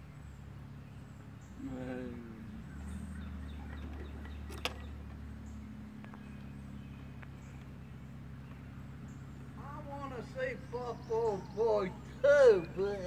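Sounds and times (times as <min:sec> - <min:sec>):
engine idling: 0:00.0 - 0:13.0.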